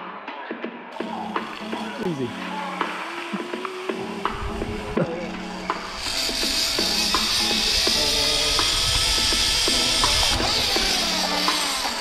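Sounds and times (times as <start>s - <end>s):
background music: 0.0s - 12.0s
zip line pulleys whirring on cable: 1.0s - 12.0s.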